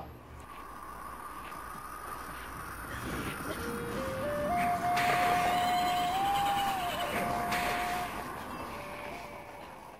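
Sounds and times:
single melody holding long notes: 3.5 - 9.9.

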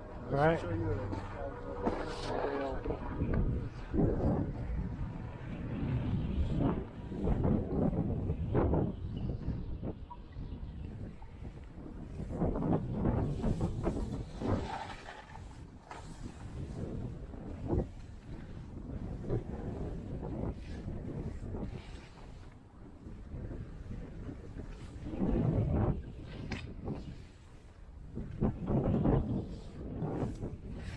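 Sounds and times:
wind buffeting microphone: 0.0 - 30.9.

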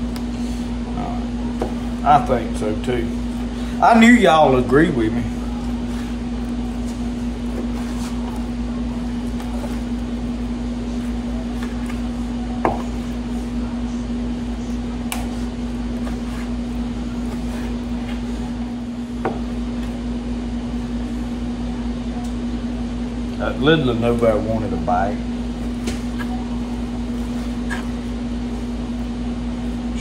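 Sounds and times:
appliance humming: 0.0 - 30.0.

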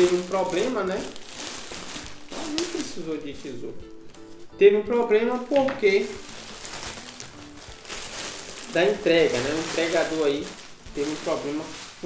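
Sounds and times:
plastic bag rustling and crinkling: 0.0 - 12.0.

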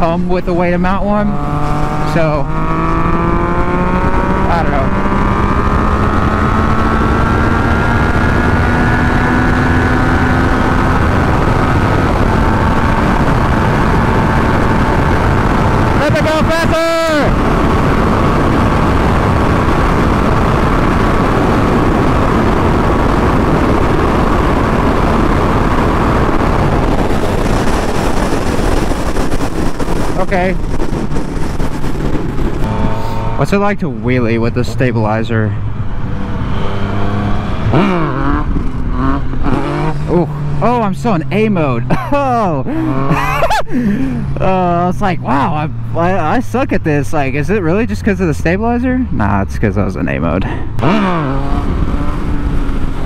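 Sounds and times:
motorcycle engine running hard: 0.0 - 46.4, 50.4 - 53.0
heavy wind rush: 0.0 - 53.0.

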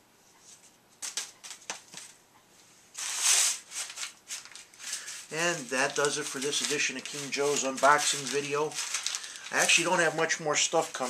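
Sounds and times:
paper rustling slide: 3.0 - 11.0.

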